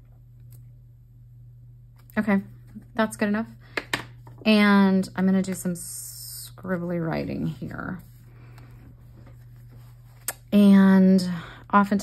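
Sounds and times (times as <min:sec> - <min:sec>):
low hum: 0:00.0 - 0:12.0
rustling of paper page: 0:07.3 - 0:10.5.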